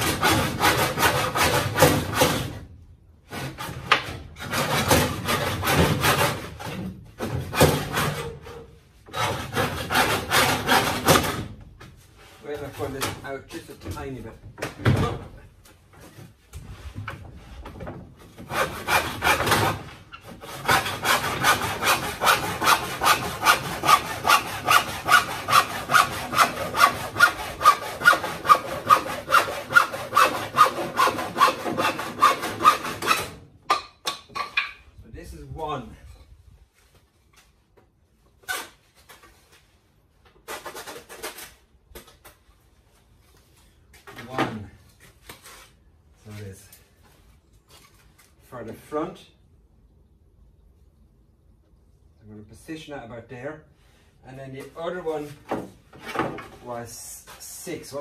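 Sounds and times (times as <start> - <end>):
hand saw cutting timber: 0.0 - 11.6, 18.3 - 34.8, 40.4 - 41.6.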